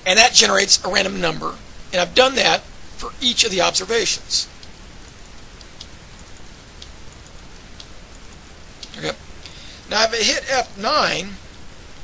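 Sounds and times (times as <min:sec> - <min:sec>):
microphone hiss: 0:00.0 - 0:12.0
faint clicks: 0:04.5 - 0:04.8, 0:05.5 - 0:09.6.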